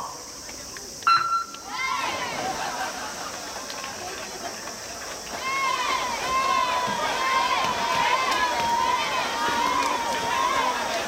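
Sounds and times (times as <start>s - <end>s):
electronic start beep: 1.1s - 1.6s.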